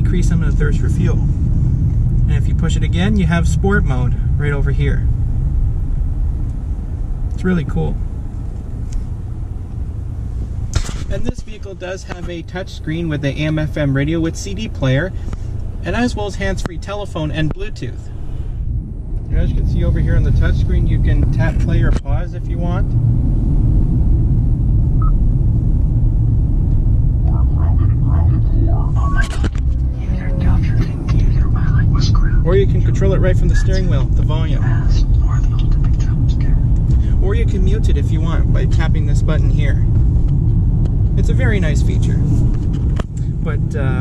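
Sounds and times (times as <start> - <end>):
car engine rumble in cabin: 0.0 - 44.0
voice over car speakers: 27.3 - 36.6.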